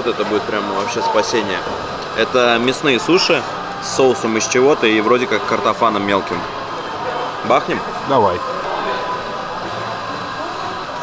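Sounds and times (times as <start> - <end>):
distant voices: 0.0 - 11.0
restaurant hubbub: 0.0 - 11.0.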